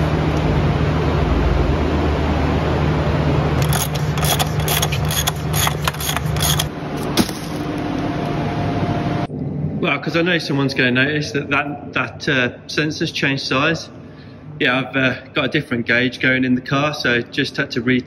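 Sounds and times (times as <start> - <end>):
heater humming: 0.0 - 15.4
ratchet clicking: 3.6 - 6.7.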